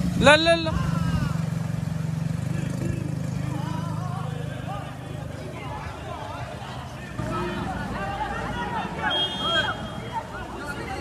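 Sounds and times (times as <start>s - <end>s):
scooter engine running: 0.0s - 8.2s
faint voices: 0.2s - 11.0s.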